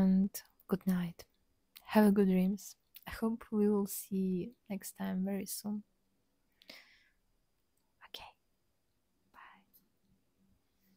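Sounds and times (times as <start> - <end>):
faint whispers: 8.0 - 8.4, 9.3 - 9.9.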